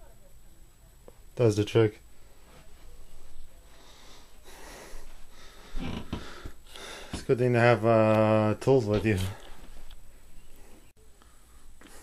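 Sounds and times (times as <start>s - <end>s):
person breathing and sniffing: 3.7s - 7.2s.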